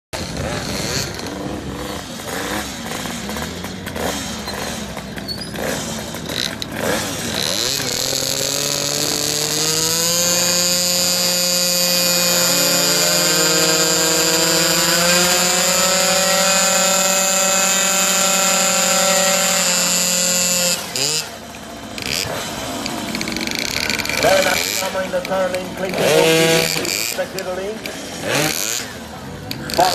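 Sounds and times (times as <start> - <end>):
two-stroke scooter engine revving: 0.2 - 29.9.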